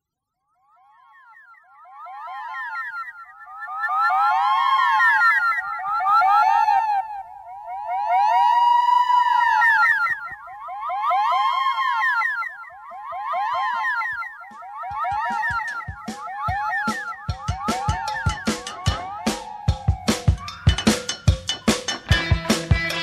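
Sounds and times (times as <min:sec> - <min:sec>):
siren-like warbling tones: 0:00.6 - 0:23.0.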